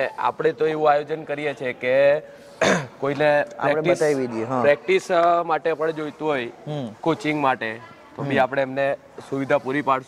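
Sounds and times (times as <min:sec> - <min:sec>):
man talking: 0:00.0 - 0:10.0
throat clearing: 0:02.6 - 0:03.0.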